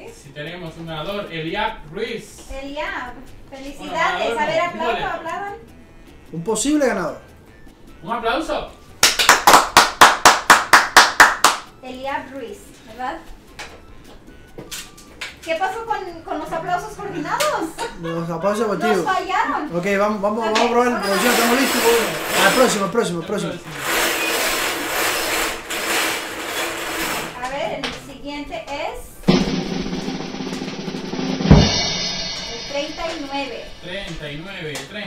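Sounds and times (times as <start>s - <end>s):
hand claps: 9.0s - 11.8s, 34.1s - 35.0s
balls rattling in wire drum: 21.0s - 27.6s.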